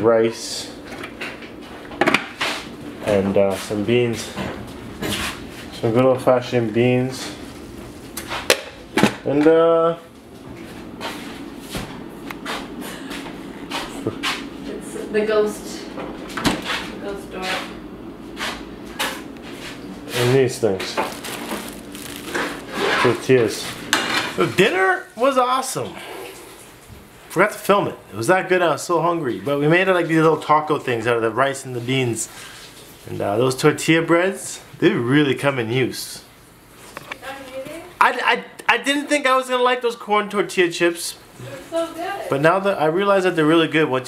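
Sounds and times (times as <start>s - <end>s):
plastic bag scraping on placemat: 21.0s - 23.7s.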